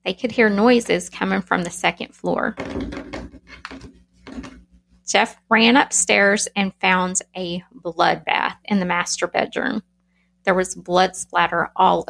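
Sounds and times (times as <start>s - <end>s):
woman speaking: 0.0s - 2.6s, 5.1s - 9.8s, 10.5s - 12.0s.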